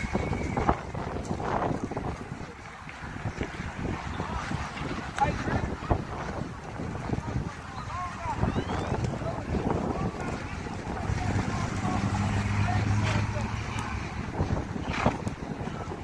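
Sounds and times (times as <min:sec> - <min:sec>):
indistinct voices: 0:00.0 - 0:16.0
wind buffeting microphone: 0:00.0 - 0:16.0.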